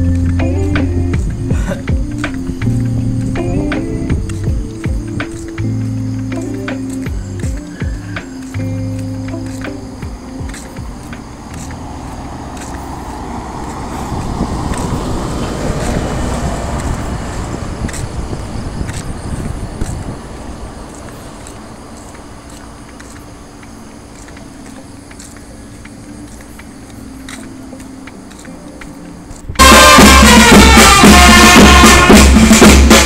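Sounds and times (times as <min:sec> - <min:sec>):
low hum of traffic: 0:00.0 - 0:33.0
vehicle passing by: 0:09.2 - 0:30.6.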